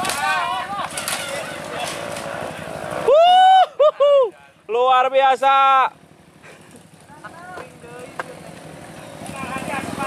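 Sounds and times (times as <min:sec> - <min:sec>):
falling bike knocks: 0:00.0 - 0:02.4
dirt bike engine running: 0:00.0 - 0:03.1, 0:04.6 - 0:10.0
onlookers shouting: 0:00.0 - 0:05.9.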